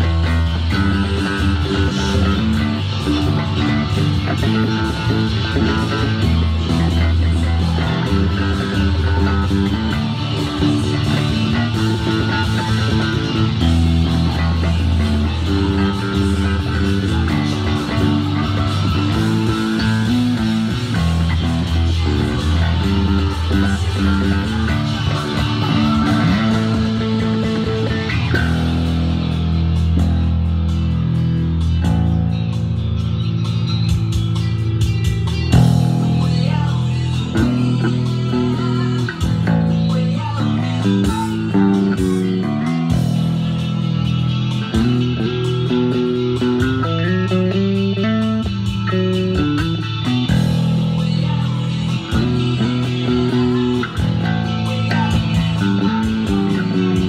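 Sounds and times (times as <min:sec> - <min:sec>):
fingerstyle electric bass: 0:00.0 - 0:57.0
rock band playing: 0:00.0 - 0:57.0.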